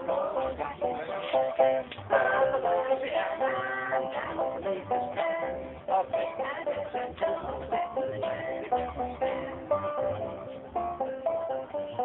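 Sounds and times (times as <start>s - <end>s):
banjo picking: 0.0s - 12.0s
person singing: 0.0s - 12.0s.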